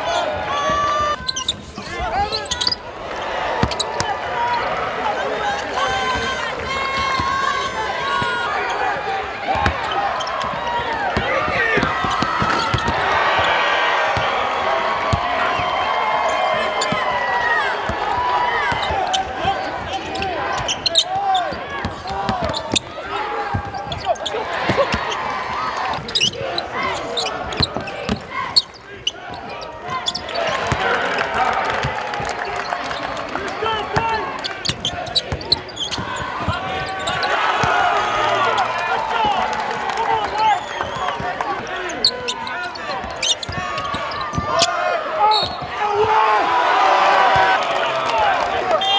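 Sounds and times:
shoes squeaking: 0.0s - 4.8s, 5.4s - 14.3s, 15.1s - 31.0s, 31.9s - 46.3s
voices of players and crowd: 0.0s - 48.9s
basketball bouncing: 3.6s - 4.2s, 9.5s - 14.4s, 15.0s - 15.7s, 16.4s - 21.0s, 21.6s - 26.6s, 27.2s - 31.0s, 33.9s - 38.0s, 42.7s - 44.7s.

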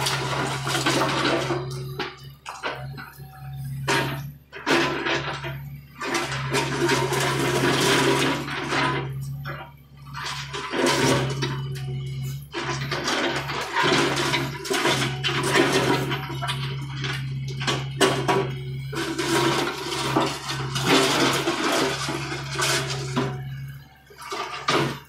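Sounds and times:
bucket scraping through dirt and rubble: 0.0s - 3.1s, 3.7s - 23.6s
excavator diesel engine droning: 0.0s - 25.0s.

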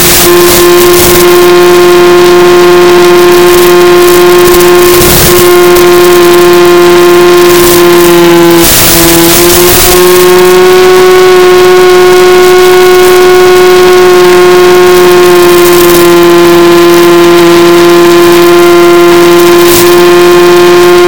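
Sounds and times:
electric motor and propeller whine: 0.0s - 21.0s
radio static crackle: 0.0s - 21.0s.

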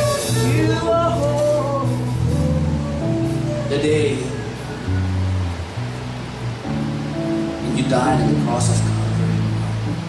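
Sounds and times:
band playing soft sustained chords: 0.0s - 10.0s.

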